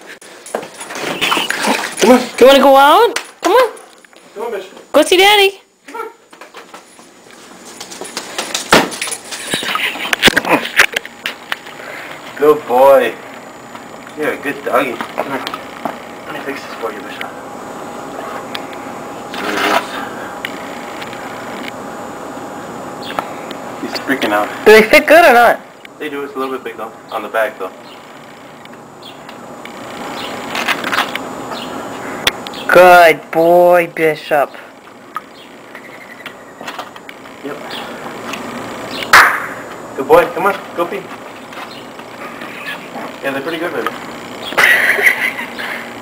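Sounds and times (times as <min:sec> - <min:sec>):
dog paws in boots on concrete: 0:00.4 - 0:03.8, 0:06.3 - 0:09.7.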